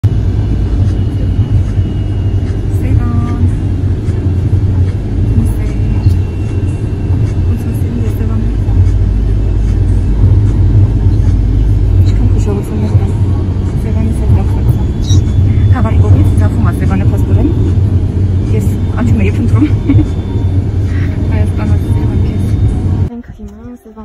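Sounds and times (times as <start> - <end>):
faint high whine: 0.0 - 23.2
car road and engine rumble: 0.0 - 24.0.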